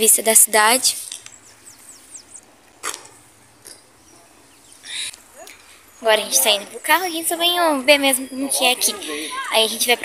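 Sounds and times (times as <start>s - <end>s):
small bird chirping: 1.0s - 2.5s, 3.6s - 8.8s.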